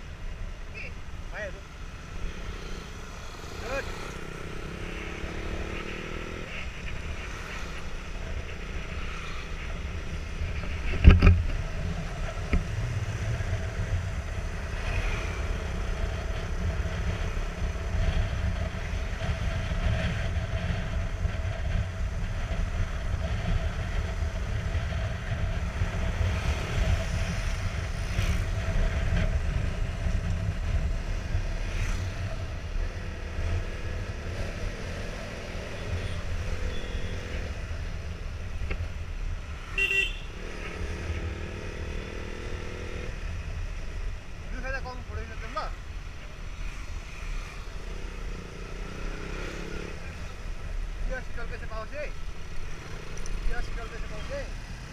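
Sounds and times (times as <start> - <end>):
wind rumble on microphone: 9.6 - 35.3
horn toot: 39.8 - 40.4.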